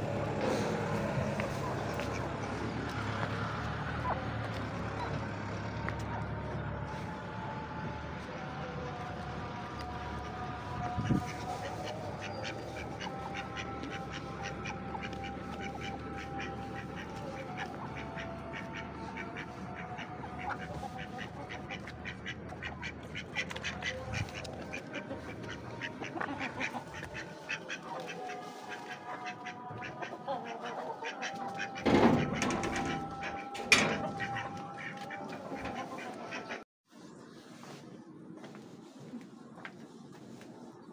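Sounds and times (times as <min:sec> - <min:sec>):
ducks quacking: 0:00.0 - 0:07.2, 0:08.7 - 0:36.6.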